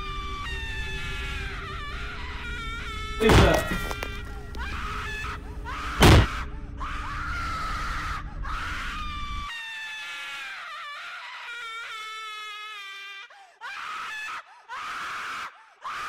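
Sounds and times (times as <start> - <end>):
person wailing and screaming: 3.1 - 4.8, 5.6 - 16.0.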